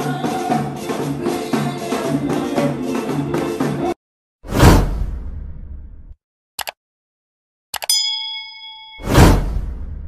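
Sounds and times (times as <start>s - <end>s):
whoosh with deep rumble: 4.5s - 6.2s, 9.0s - 10.0s
bell ding: 7.8s - 9.4s.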